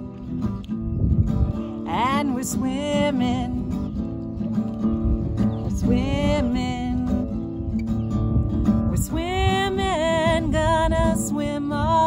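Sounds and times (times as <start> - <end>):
acoustic guitar strumming: 0.0 - 12.0
woman singing: 1.8 - 3.9, 5.6 - 7.5, 8.8 - 12.0.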